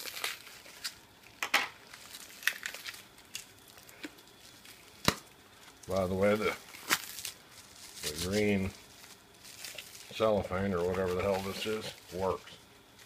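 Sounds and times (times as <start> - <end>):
plastic wrap crinkling and tearing: 0.0 - 13.0.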